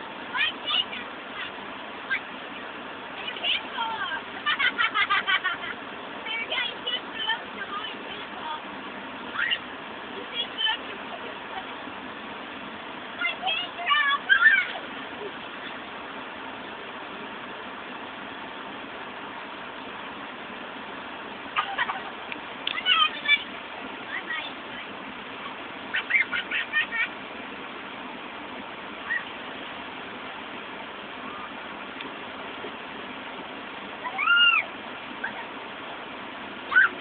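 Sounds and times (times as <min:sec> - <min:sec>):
steady background hiss: 0:00.0 - 0:37.0
girls shouting and squealing: 0:34.0 - 0:35.5, 0:36.7 - 0:37.0.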